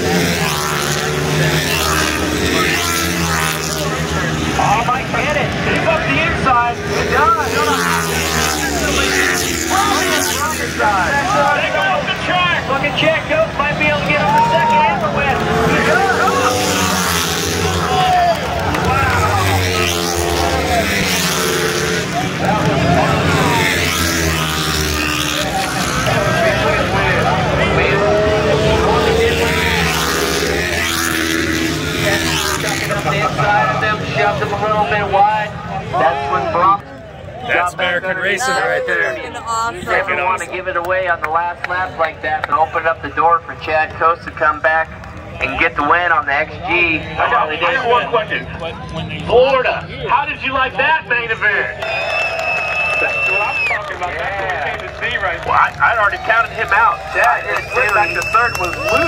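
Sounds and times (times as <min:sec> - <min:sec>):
motorcycle engines revving past: 0:00.0 - 0:40.7, 0:52.1 - 0:59.0.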